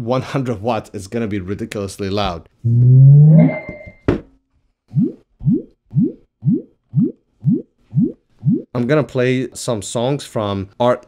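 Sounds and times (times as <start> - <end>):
rising start-up tone: 2.8 - 3.8
short rising beeps: 3.2 - 4.0.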